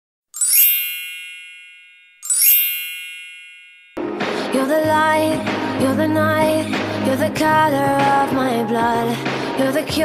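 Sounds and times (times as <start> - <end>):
bell-like chime: 0.4 - 4.1.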